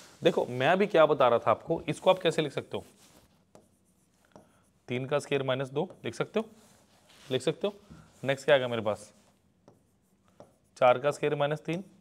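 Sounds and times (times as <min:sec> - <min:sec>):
marker pen on whiteboard: 0:00.0 - 0:12.0.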